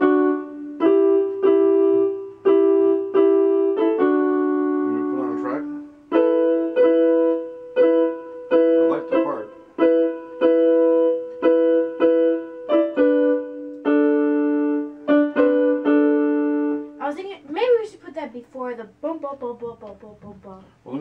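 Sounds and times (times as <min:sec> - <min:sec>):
digital piano chords: 0:00.0 - 0:18.0
person speaking: 0:04.9 - 0:05.9.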